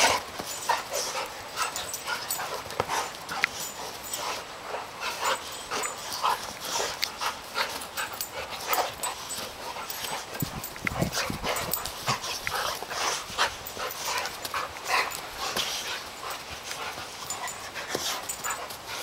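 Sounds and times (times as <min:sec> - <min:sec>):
dogs play-fighting noises: 0:00.0 - 0:19.0.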